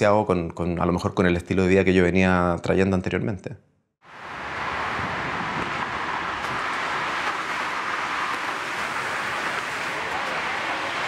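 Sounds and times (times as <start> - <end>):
city street traffic: 4.0 - 11.0.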